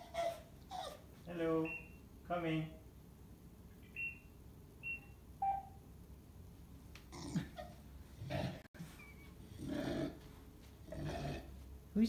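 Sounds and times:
intercom high beeps: 0:03.9 - 0:05.8.

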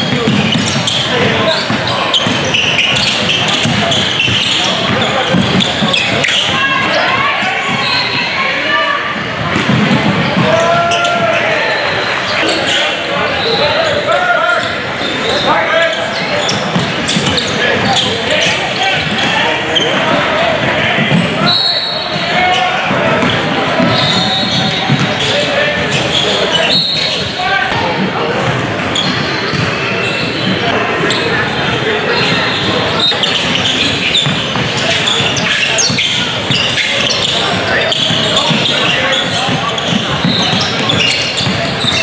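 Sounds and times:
indistinct voices: 0:00.0 - 0:42.0
sneaker squeaks: 0:00.0 - 0:42.0
basketball bouncing on hardwood: 0:24.9 - 0:25.2.

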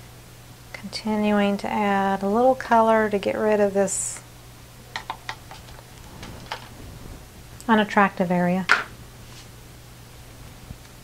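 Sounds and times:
steady low hum: 0:00.0 - 0:11.0
plastic cups clicking and tapping: 0:05.0 - 0:05.7.

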